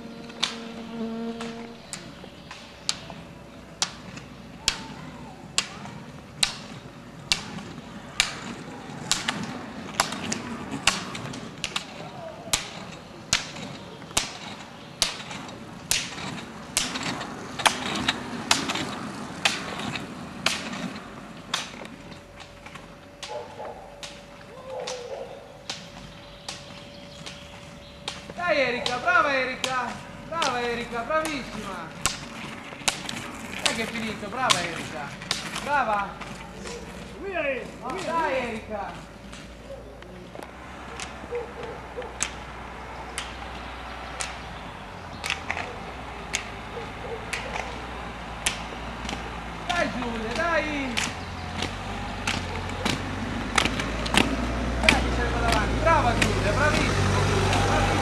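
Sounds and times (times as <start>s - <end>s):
ski pole tips clicking on asphalt: 0.2s - 0.8s, 1.4s - 58.0s.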